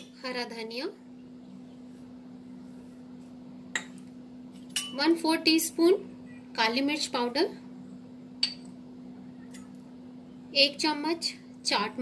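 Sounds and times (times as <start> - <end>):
spoon clinking against glass bowl: 3.7 - 4.1, 4.7 - 5.1, 8.4 - 8.8.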